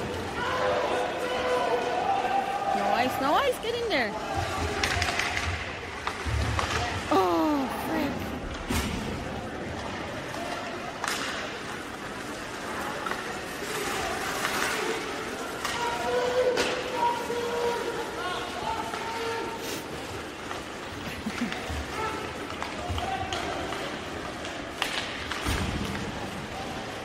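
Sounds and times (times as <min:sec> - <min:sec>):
crowd talking and calling out: 0:00.0 - 0:27.0
hockey sticks and puck knocking: 0:04.4 - 0:07.1, 0:10.3 - 0:17.0, 0:21.3 - 0:26.5.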